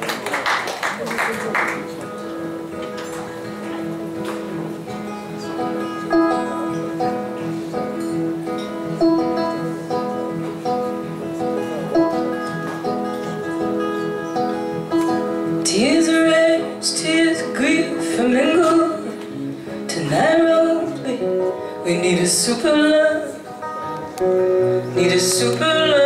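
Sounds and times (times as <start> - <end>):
live band with guitars: 0.0 - 26.0.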